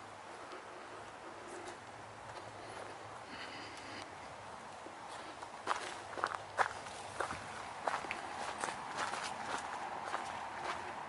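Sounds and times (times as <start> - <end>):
footsteps crunching on gravel: 5.1 - 11.0.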